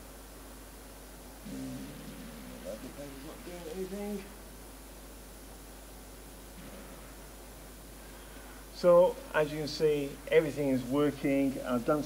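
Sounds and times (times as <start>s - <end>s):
low hum: 0.0s - 10.5s
steady hiss: 0.0s - 12.0s.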